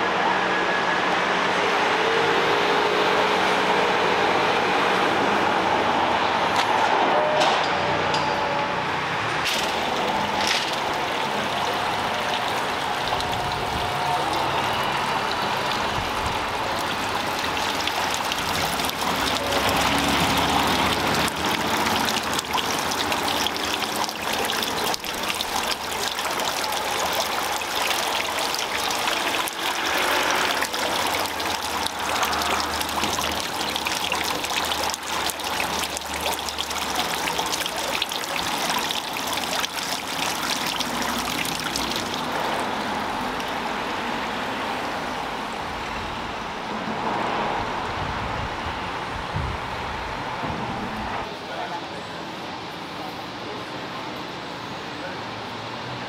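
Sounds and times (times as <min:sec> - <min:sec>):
running water splashing: 0:09.4 - 0:45.1.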